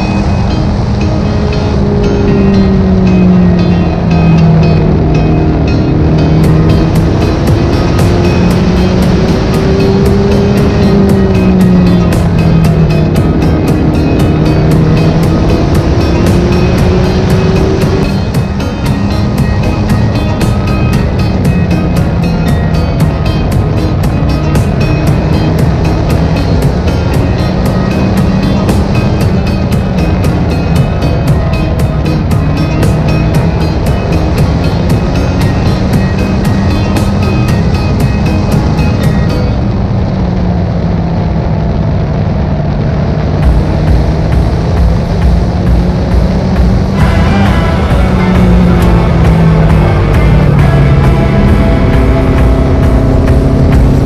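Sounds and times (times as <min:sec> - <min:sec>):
background music with steady beat: 0:00.0 - 0:41.5, 0:42.9 - 0:54.0
race car engine running hard: 0:00.0 - 0:54.0.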